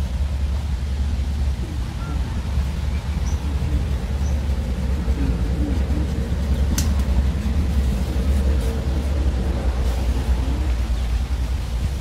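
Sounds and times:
wind buffeting microphone: 0:00.0 - 0:12.0
faint high bird chirps: 0:02.0 - 0:02.3
sharp click: 0:06.7 - 0:07.1.

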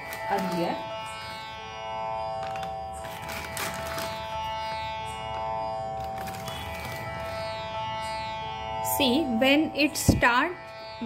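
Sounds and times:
sustained drone: 0:00.0 - 0:11.0.

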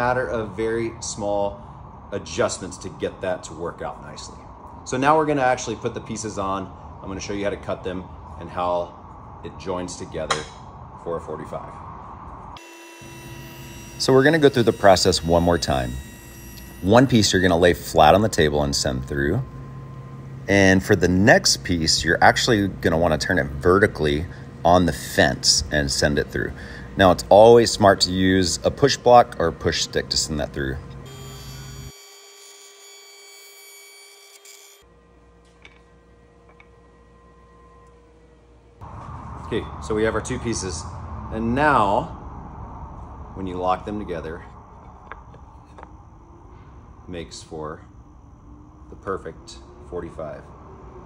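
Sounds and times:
spindle shaper motor whine: 0:12.4 - 0:39.0, 0:42.7 - 0:51.0
electric motor whine: 0:12.6 - 0:21.2, 0:29.0 - 0:35.8.

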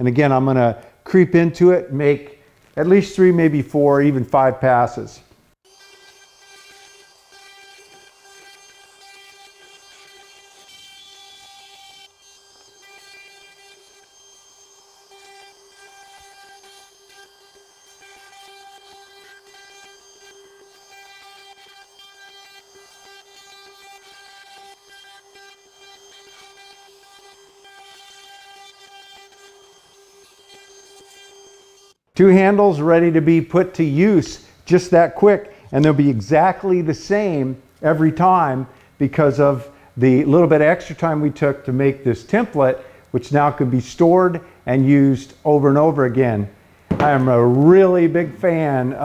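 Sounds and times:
router whining: 0:05.6 - 0:32.0.

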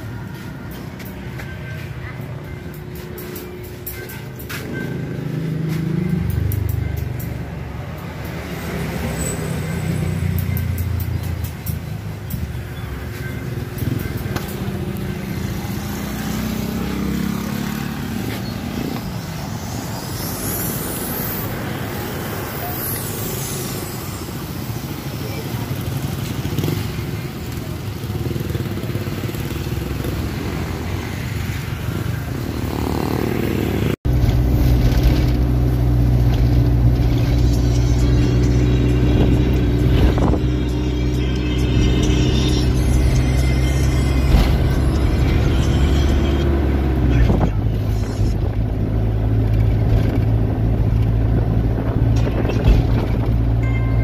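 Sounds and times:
roadside traffic: 0:00.0 - 0:54.0.

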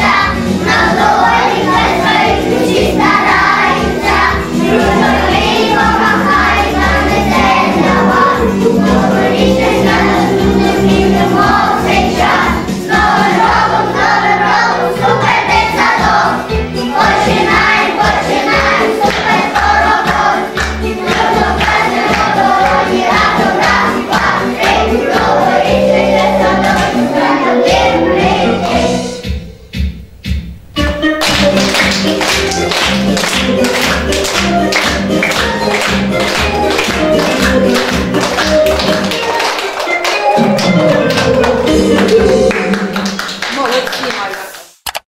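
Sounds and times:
children singing in unison: 0:00.0 - 0:29.1
upbeat music with steady beat: 0:00.0 - 0:43.7
children clapping in time: 0:19.0 - 0:22.9, 0:31.2 - 0:45.0.

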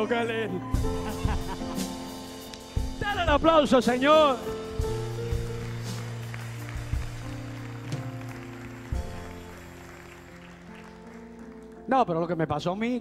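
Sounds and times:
soft keyboard chords: 0:00.0 - 0:13.0
light scattered applause: 0:04.8 - 0:12.4.

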